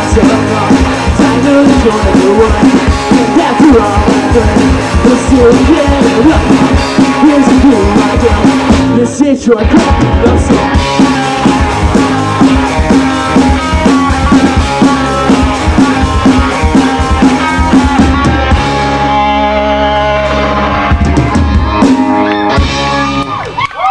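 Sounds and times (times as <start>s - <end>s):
live rock band playing: 0.0s - 23.9s
drum hits: 9.8s - 19.0s.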